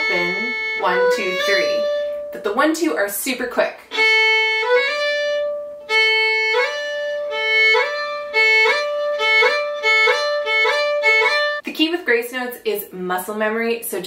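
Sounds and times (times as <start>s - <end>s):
solo fiddle: 0.0s - 2.3s, 3.9s - 11.6s.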